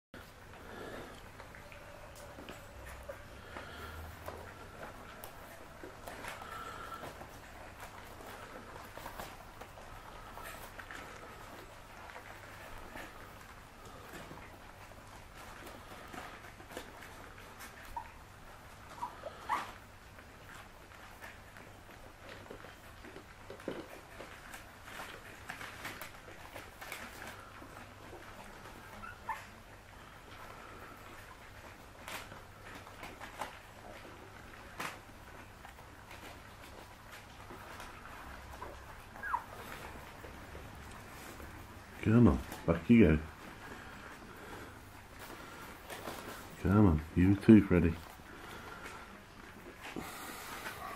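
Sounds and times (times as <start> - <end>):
puppies eating from bowls: 0.2 - 50.9
puppies squeaking: 16.5 - 19.8, 28.1 - 29.7, 37.6 - 41.6.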